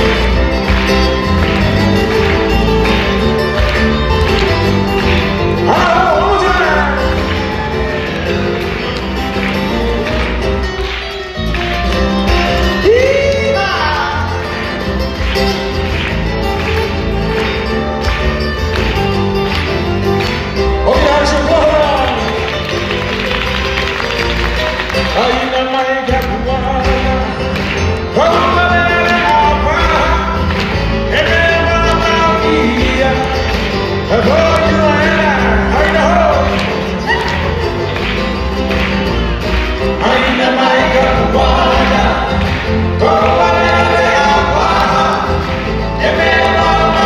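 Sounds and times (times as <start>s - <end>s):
acoustic guitars: 0.0s - 47.0s
keyboard: 0.0s - 47.0s
person singing: 5.1s - 8.2s, 12.6s - 14.8s, 25.0s - 37.6s, 39.9s - 47.0s.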